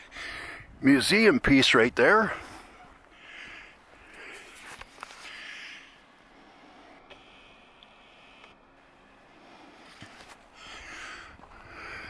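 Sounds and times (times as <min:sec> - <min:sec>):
faint ticks: 0:07.1 - 0:08.6.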